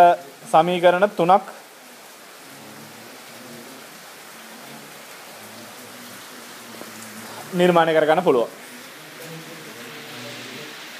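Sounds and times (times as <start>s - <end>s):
steady background hiss: 0.0s - 10.9s.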